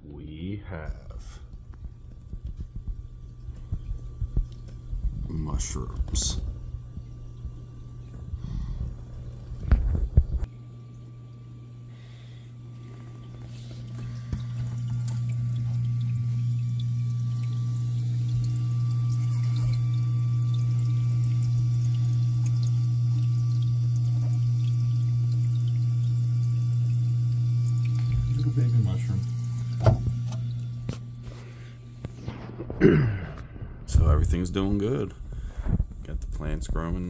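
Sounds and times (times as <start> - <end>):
water pump hum: 0.0 - 37.0
running water: 1.1 - 32.5.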